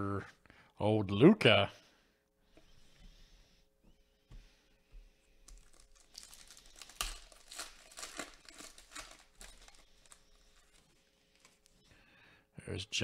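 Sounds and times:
foil wrapper tearing and crinkling: 5.4s - 11.8s.

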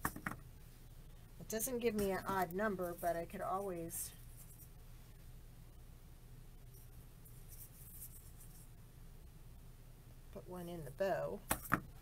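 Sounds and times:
low steady hum: 0.0s - 12.0s
ribbon and mesh rustling: 6.7s - 8.7s.

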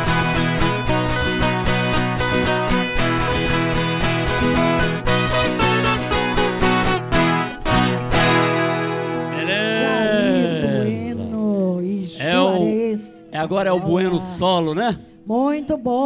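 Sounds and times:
guitars strummed and plucked: 0.0s - 14.7s
voice calling out: 9.3s - 14.7s.

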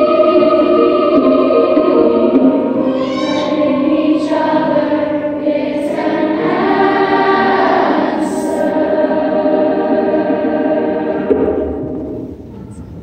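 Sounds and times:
choir singing held notes: 0.0s - 12.4s.

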